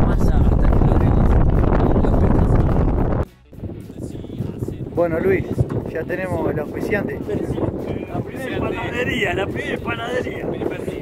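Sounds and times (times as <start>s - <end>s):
heavy wind buffeting microphone: 0.0s - 11.0s
steady wind noise: 0.0s - 11.0s.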